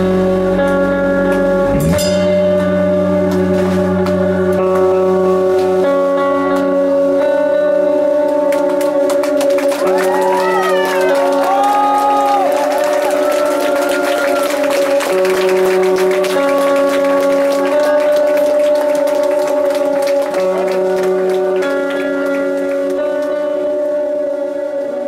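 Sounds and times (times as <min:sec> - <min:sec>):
electric guitar sustained chords: 0:00.0 - 0:25.0.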